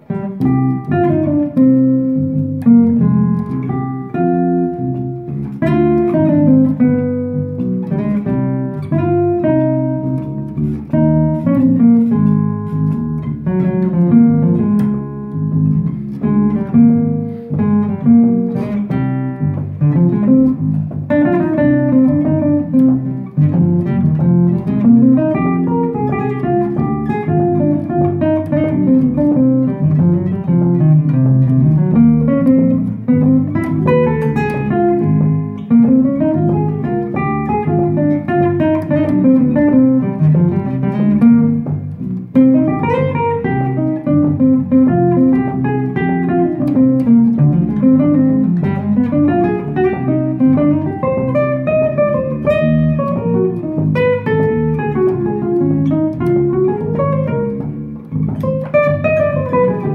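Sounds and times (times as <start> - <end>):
plucked bass line: 0.0 - 59.9.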